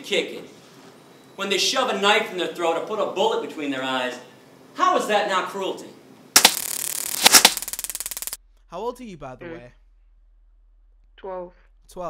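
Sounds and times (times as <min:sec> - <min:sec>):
burst of hissing noise: 0:06.4 - 0:08.4
fast rattling buzz: 0:06.4 - 0:08.4
sharp cracks: 0:06.4 - 0:08.4.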